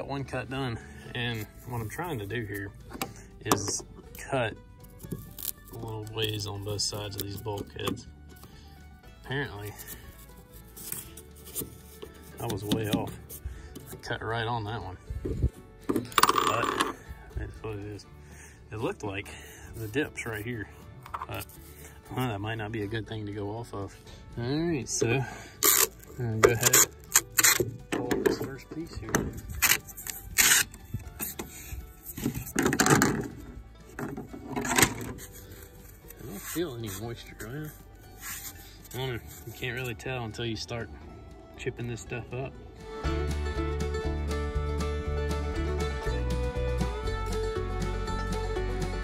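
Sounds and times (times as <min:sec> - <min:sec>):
quiet background music: 0:00.0 - 0:49.0
fiberglass scraping and cracking: 0:04.8 - 0:07.9, 0:09.6 - 0:14.0, 0:25.6 - 0:40.0
knife blade scraping foam: 0:34.9 - 0:39.9.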